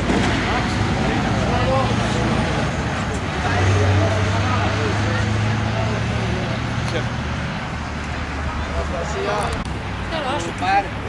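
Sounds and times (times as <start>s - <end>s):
lorry engine drone: 0.0s - 11.0s
road traffic: 0.0s - 11.0s.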